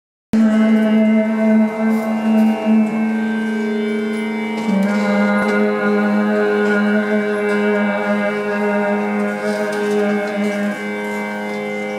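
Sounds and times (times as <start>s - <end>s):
woman singing classical: 0.4s - 3.3s, 4.6s - 10.8s
harmonium: 0.4s - 11.9s.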